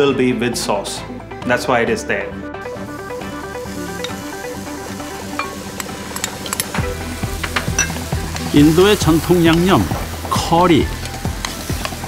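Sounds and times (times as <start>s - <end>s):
background music: 0.0s - 12.0s
chickpeas sizzling in a pot: 2.7s - 12.0s
utensil clinks: 5.4s - 8.0s.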